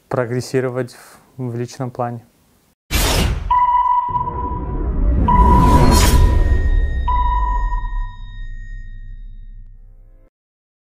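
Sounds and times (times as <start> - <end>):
high electronic ping: 3.0 - 9.9
low rumble: 4.0 - 10.2.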